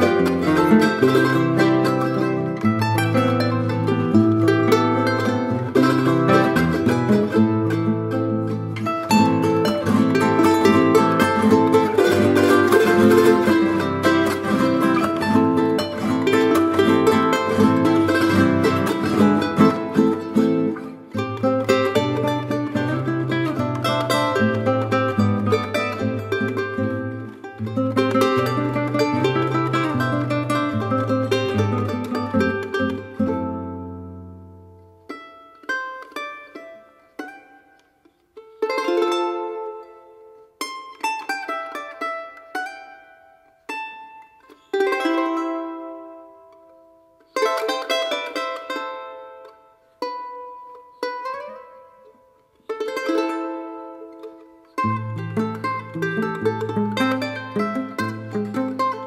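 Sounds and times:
guitar bass line: 0.0 - 34.8, 54.8 - 59.0
charango playing: 0.0 - 59.0.

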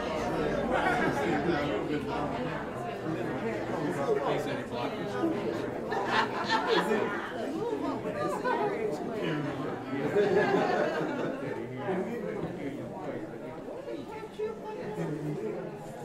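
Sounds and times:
murmur of voices: 0.0 - 16.0.

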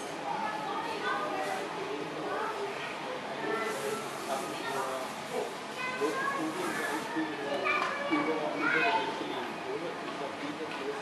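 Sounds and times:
children chattering and calling: 0.0 - 10.9.

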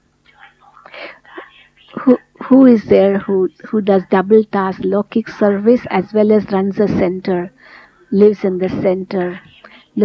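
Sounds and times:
person speaking softly: 0.3 - 10.0.

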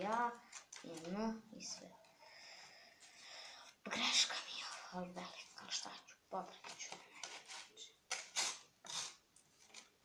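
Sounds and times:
girl whispering: 0.0 - 2.1, 3.6 - 7.2.

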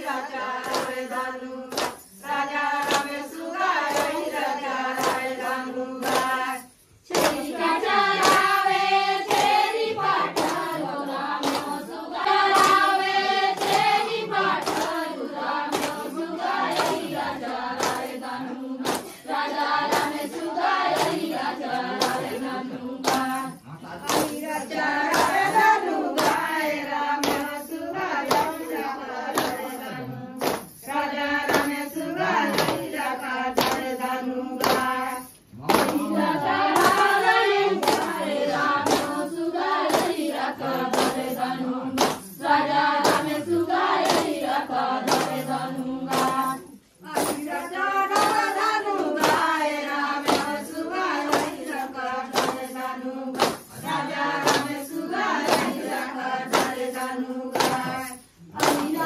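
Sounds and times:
hand claps: 0.0 - 59.0
women singing folk song: 0.0 - 59.0.

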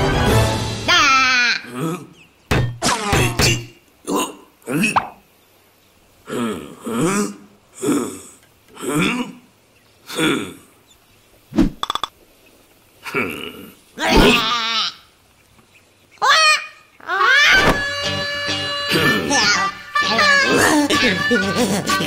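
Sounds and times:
cartoon grunts and calls: 0.9 - 2.2, 2.8 - 5.2, 6.2 - 9.5, 13.0 - 15.0, 18.9 - 22.0.

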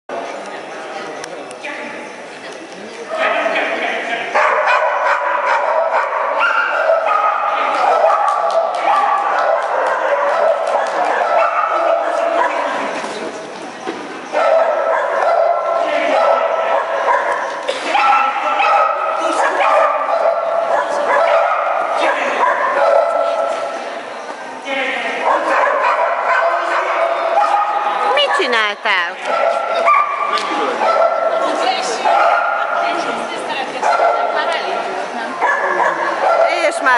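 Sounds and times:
people's voices: 0.1 - 36.9
dogs barking and yipping: 4.3 - 13.2, 14.2 - 23.9, 25.2 - 36.9.

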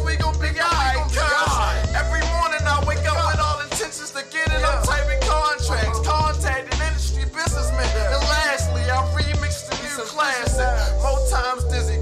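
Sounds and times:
deep bass notes: 0.0 - 3.8, 4.5 - 9.7, 10.5 - 12.0
man rapping over a beat: 0.0 - 12.0.

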